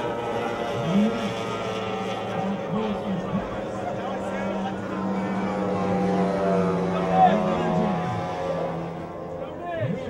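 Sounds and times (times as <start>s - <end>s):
outboard engine at high speed: 0.0s - 10.0s.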